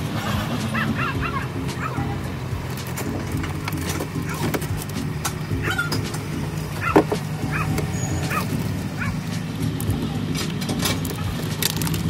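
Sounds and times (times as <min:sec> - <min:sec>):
dog yipping and barking: 0:00.7 - 0:02.2, 0:05.6 - 0:06.0, 0:06.8 - 0:09.2.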